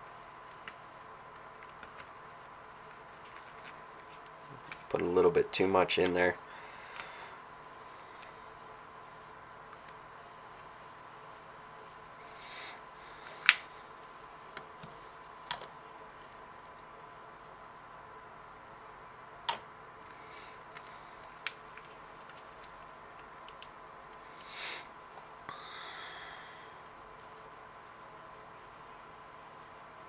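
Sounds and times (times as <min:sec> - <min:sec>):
faint high-pitched hum: 0:00.0 - 0:30.0.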